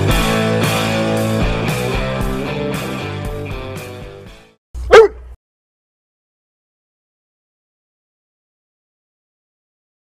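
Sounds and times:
rock music with guitar: 0:00.0 - 0:04.6
dog barking: 0:04.8 - 0:05.4.

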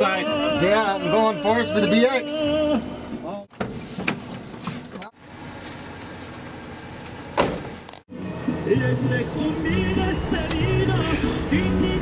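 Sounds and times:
van road and engine noise: 0:00.0 - 0:12.0.

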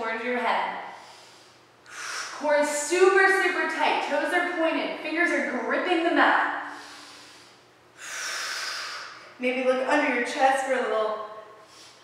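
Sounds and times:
woman breathing: 0:00.8 - 0:02.4, 0:06.6 - 0:09.3, 0:11.6 - 0:12.0.

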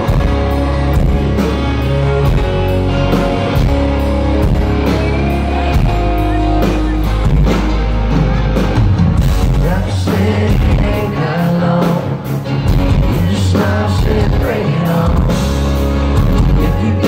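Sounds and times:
live country-rock band: 0:00.0 - 0:17.0.

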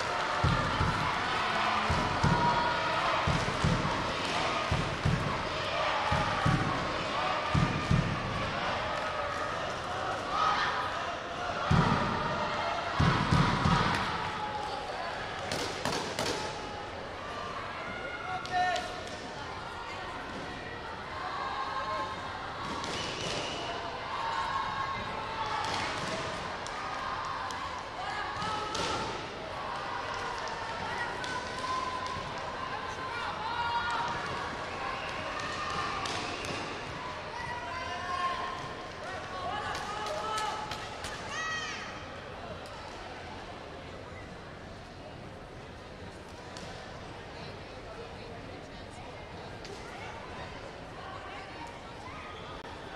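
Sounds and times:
background voices chattering: 0:00.0 - 0:52.9.

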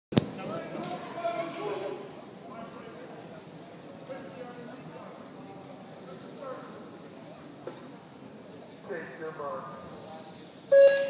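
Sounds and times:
voices talking indistinctly: 0:00.2 - 0:11.0.

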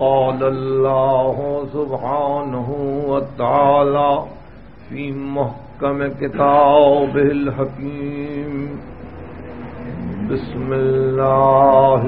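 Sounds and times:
man chanting: 0:00.0 - 0:08.9, 0:09.8 - 0:12.0.

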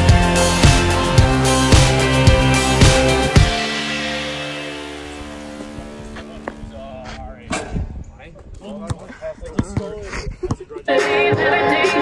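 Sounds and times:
background music: 0:00.0 - 0:07.4, 0:10.9 - 0:12.0.

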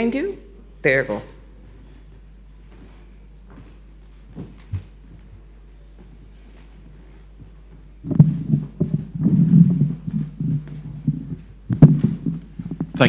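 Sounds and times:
low mains hum: 0:00.0 - 0:13.0
microphone handling thumps and knocks: 0:04.3 - 0:05.5, 0:07.4 - 0:13.0.

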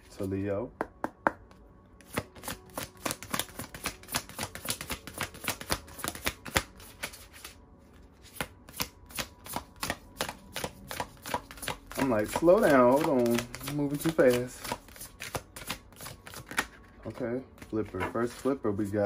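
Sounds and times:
cards being shuffled: 0:02.0 - 0:19.0.

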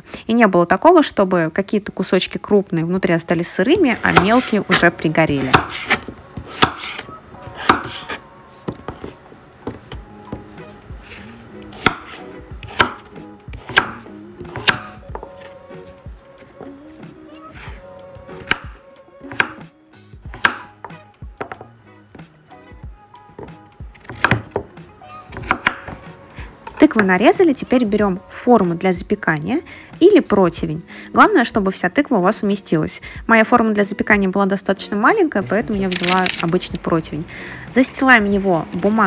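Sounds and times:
knife striking wooden board: 0:05.5 - 0:07.0, 0:11.8 - 0:15.3, 0:20.3 - 0:21.6, 0:23.4 - 0:24.7, 0:25.3 - 0:26.0.

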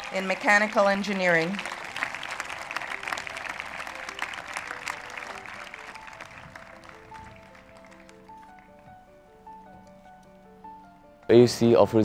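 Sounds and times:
audience applauding: 0:00.0 - 0:08.8
soft background music: 0:00.0 - 0:12.0.

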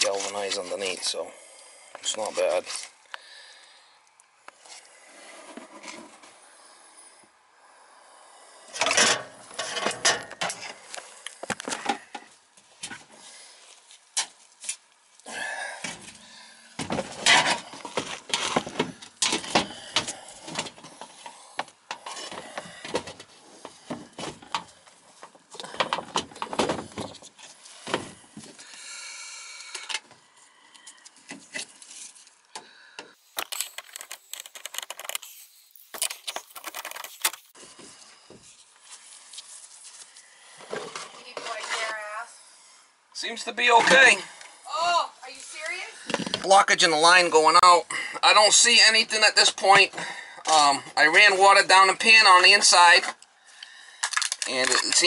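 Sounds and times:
tools scraping and knocking sheet metal: 0:08.8 - 0:10.7, 0:16.9 - 0:19.8.

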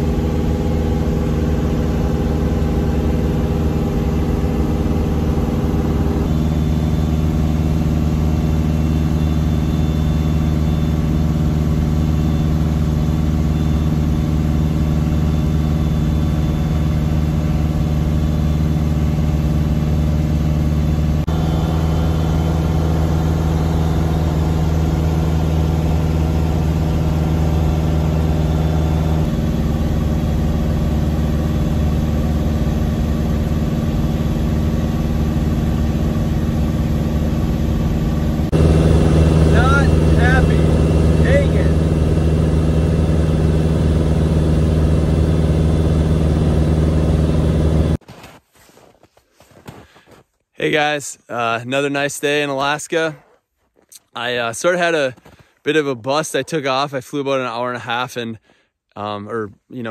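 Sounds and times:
propeller plane engine drone: 0:00.0 - 0:48.0.

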